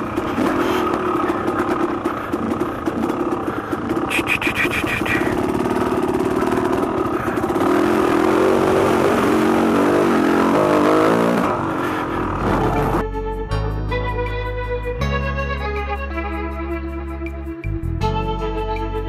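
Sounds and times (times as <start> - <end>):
dirt bike engine revving: 0.0 - 13.0
keyboard music with bass line: 12.4 - 19.0.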